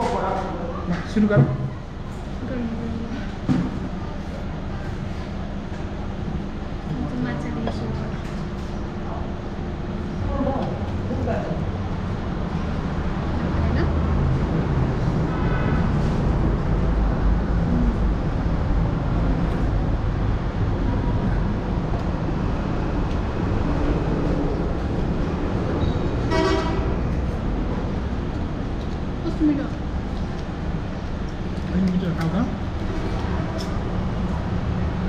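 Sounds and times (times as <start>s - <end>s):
road traffic rumbling: 0.0s - 35.0s
vehicle horn tooting: 26.3s - 27.0s.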